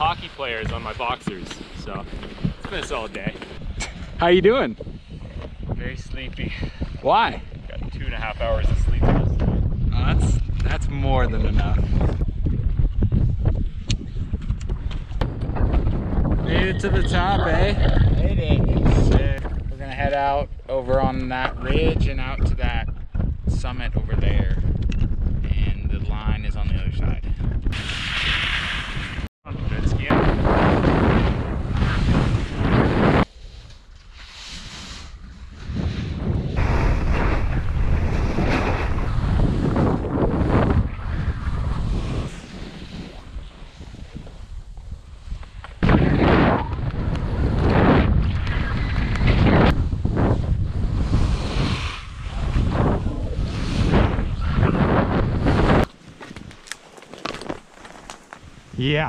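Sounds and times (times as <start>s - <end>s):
wind buffeting microphone: 0.0s - 34.2s, 35.0s - 59.0s
skis hissing through snow: 33.4s - 35.2s, 51.1s - 52.6s.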